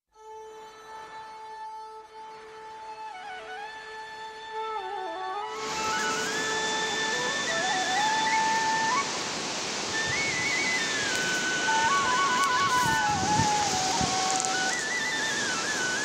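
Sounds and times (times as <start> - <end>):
slow flute melody: 0.2 - 16.0
steady rushing noise: 5.6 - 16.0.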